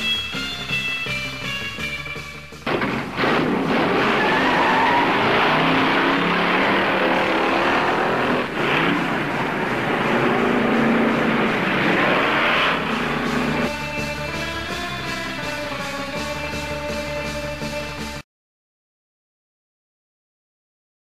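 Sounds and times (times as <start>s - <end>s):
car engine accelerating: 2.7s - 16.6s.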